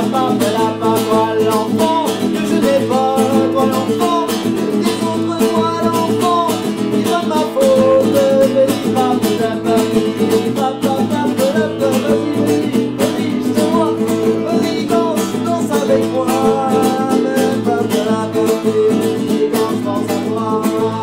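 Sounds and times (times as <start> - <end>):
acoustic guitar strumming: 0.0 - 21.0
man singing: 0.0 - 21.0.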